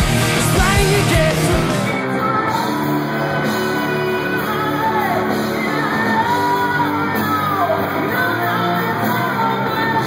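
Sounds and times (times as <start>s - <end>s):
lead singer singing: 0.0s - 10.0s
rock band playing: 0.0s - 10.0s.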